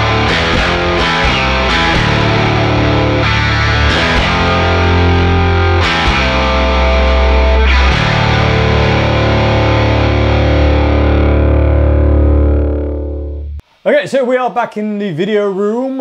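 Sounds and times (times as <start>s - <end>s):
bass guitar: 0.0s - 13.6s
distorted electric guitar chords: 0.0s - 13.8s.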